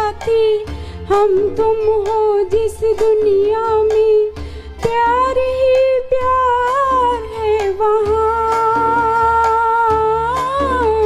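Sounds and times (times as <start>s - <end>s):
backing music with bass and beat: 0.0s - 11.0s.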